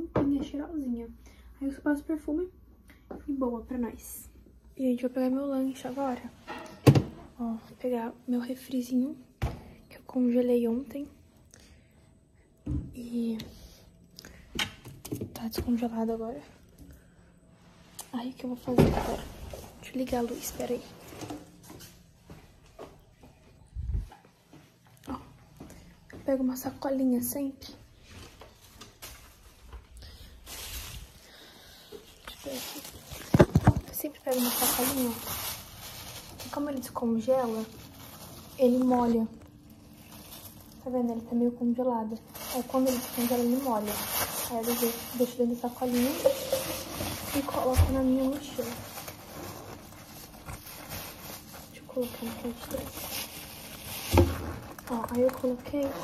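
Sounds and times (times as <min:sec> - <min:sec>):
plastic bag rustling: 0:18.4 - 0:21.9, 0:27.3 - 0:56.0.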